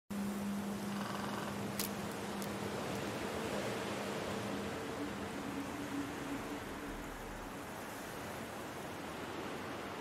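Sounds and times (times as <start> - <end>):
low hum: 0.1 - 8.4.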